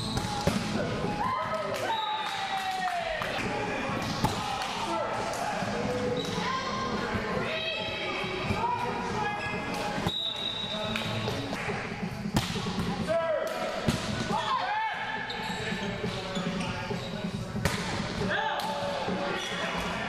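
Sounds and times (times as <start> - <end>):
players calling and shouting: 12.6 - 17.3.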